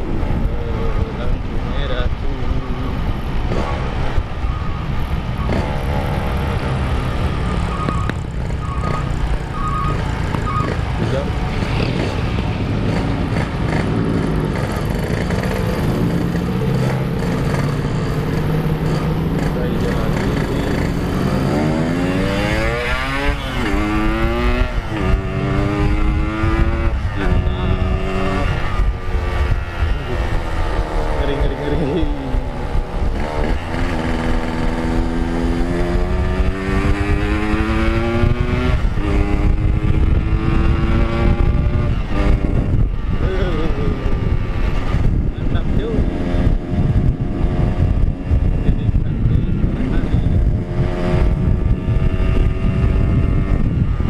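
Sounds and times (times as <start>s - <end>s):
motorcycle engine revving: 0.0s - 54.0s.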